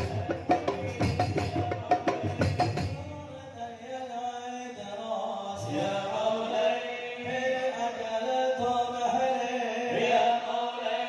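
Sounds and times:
men chanting in unison: 0:00.0 - 0:11.0.

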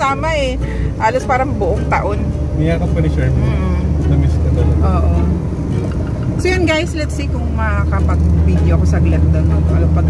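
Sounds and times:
car interior rumble: 0:00.0 - 0:10.0.

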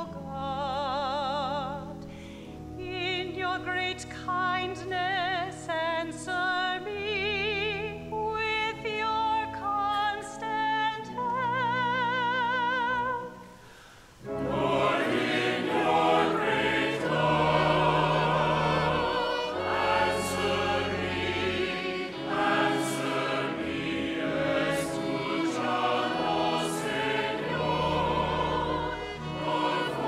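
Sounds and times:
women singing in harmony: 0:02.8 - 0:13.4, 0:14.3 - 0:30.0
congregation singing: 0:14.2 - 0:30.0.

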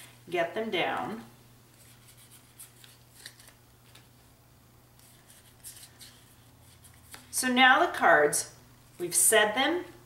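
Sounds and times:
low steady hum: 0:00.0 - 0:10.0
playing cards rustling and tapping: 0:01.8 - 0:04.1.

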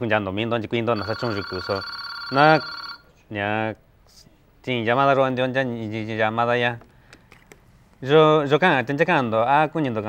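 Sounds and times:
man talking: 0:00.0 - 0:02.7, 0:08.0 - 0:10.0
telephone ringing: 0:00.9 - 0:03.1.

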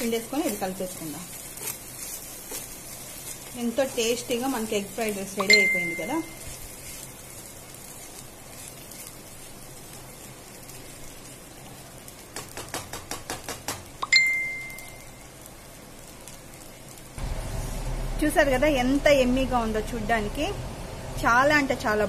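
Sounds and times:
rice sizzling in a pan: 0:00.0 - 0:20.6
spatula scraping a pan: 0:00.5 - 0:04.2
low hum: 0:17.2 - 0:22.0.

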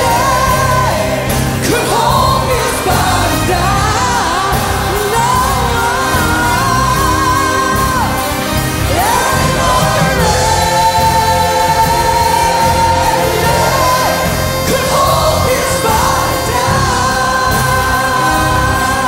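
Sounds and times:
choir singing gospel song: 0:00.0 - 0:19.0
church band playing: 0:00.0 - 0:19.0.

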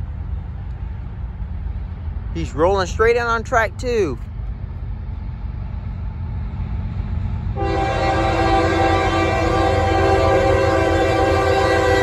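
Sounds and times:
distant diesel locomotive rumble: 0:00.0 - 0:12.0.

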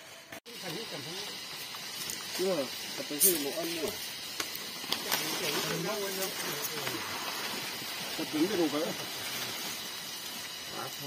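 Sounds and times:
crisp crackle: 0:00.0 - 0:11.0
steady high hiss: 0:00.0 - 0:11.0.

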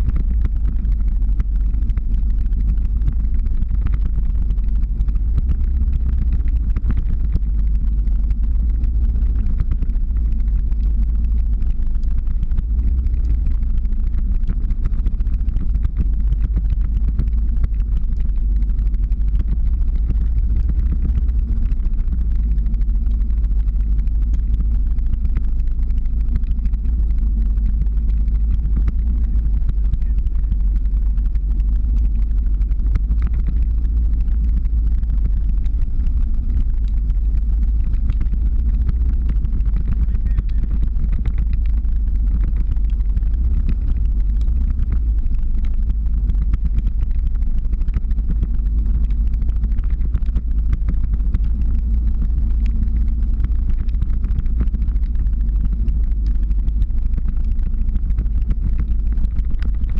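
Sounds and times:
vehicle engine rumble: 0:00.0 - 0:59.9.

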